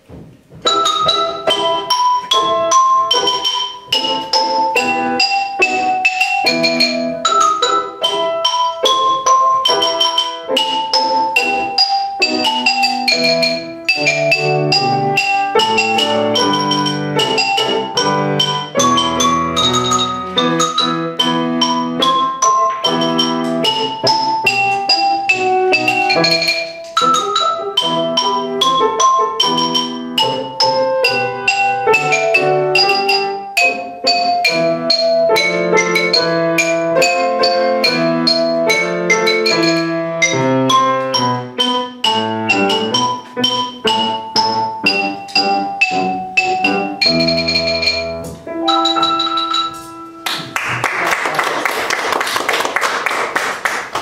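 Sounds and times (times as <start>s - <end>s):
xylophone melody: 0.6s - 50.8s.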